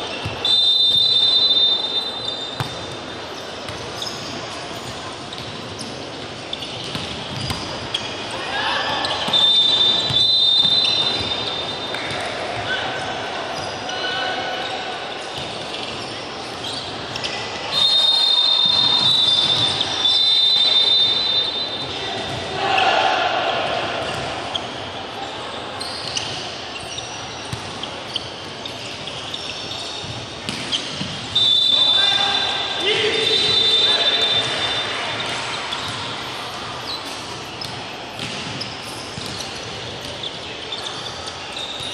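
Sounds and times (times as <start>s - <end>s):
shrill whistle blasts: 0.4s - 2.5s, 9.2s - 11.4s, 17.7s - 21.9s, 31.3s - 32.6s, 33.2s - 35.0s
volleyball struck and bouncing: 37.6s - 38.6s.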